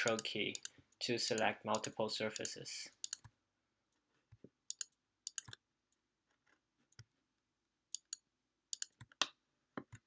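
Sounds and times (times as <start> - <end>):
computer mouse clicks: 0.0 - 3.4, 4.3 - 5.6, 7.9 - 10.0.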